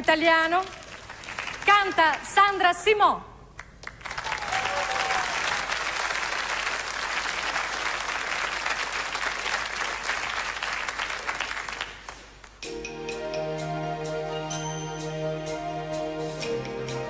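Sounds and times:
studio audience applauding: 0.6s - 2.3s, 3.6s - 12.6s.

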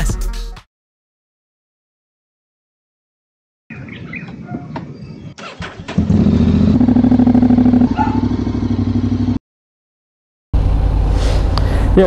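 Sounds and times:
motorcycle engine starting and idling: 5.4s - 9.4s.

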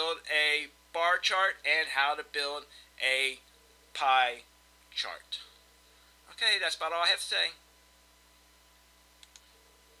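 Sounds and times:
faint electrical hum: 0.0s - 10.0s
computer mouse clicks: 9.2s - 9.5s.

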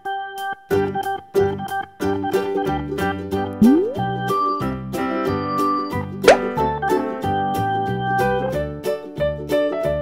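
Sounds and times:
cheerful children's music: 0.0s - 10.0s
cartoon plop sound effect: 3.6s - 4.2s, 6.2s - 6.6s.

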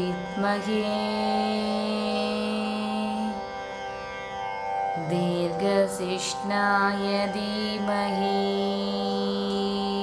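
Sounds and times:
string accompaniment: 0.0s - 10.0s.

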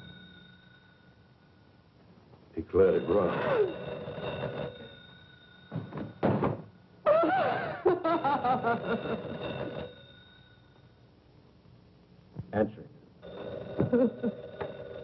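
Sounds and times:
woman crying out in distress: 7.0s - 7.8s.

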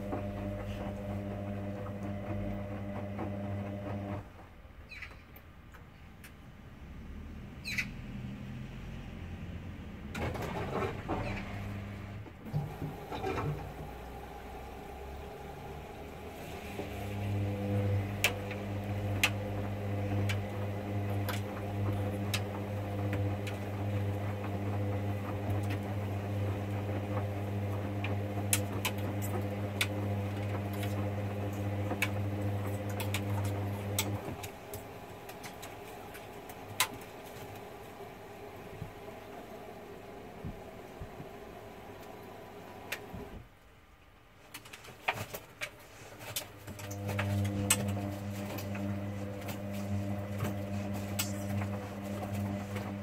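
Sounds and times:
motor hum: 0.0s - 4.2s, 11.5s - 43.4s, 46.7s - 53.0s
washing machine drum tumbling: 12.4s - 38.1s.

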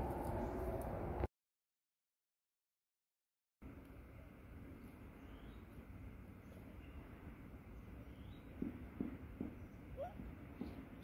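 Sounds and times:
monkey low calls: 9.9s - 10.3s.

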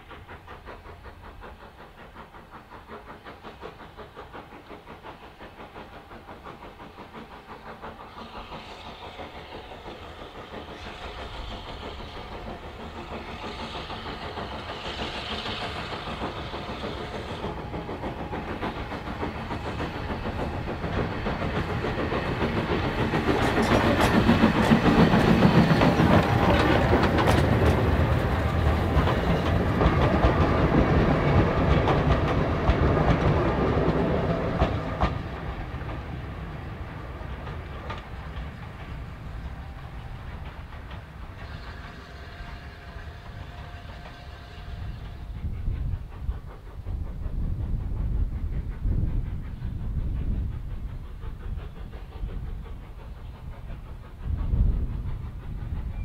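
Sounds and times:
steam locomotive exhaust: 0.0s - 56.0s.

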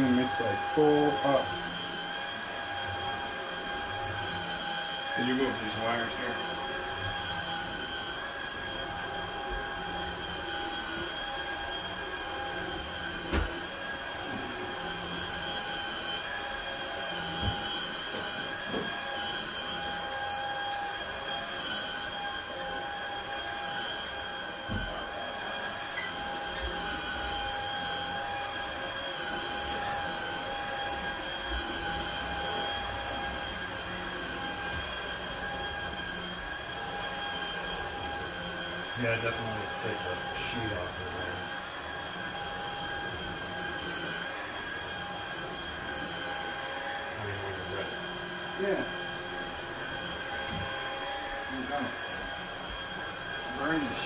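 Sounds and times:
vacuum cleaner running: 0.0s - 54.0s.

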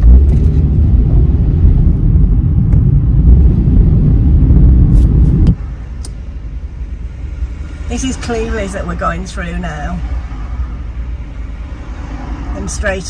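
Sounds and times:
car engine and road rumble: 0.0s - 13.0s.

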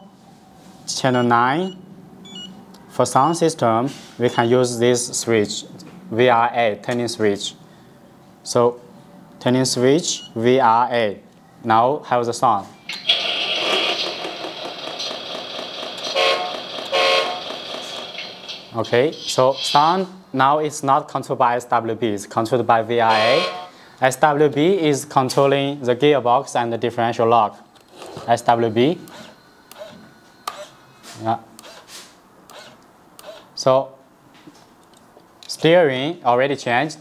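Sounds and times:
simulated diesel truck sounds: 13.0s - 19.7s
short horn-like tone: 16.1s - 17.4s, 23.1s - 23.8s.

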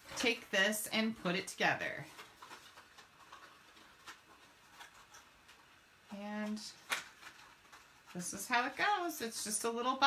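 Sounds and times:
cardstock taps and rustles: 6.5s - 8.2s.

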